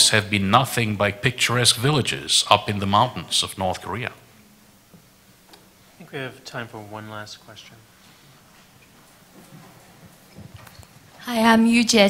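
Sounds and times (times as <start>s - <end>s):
faint knocks and thumps: 8.4s - 11.2s.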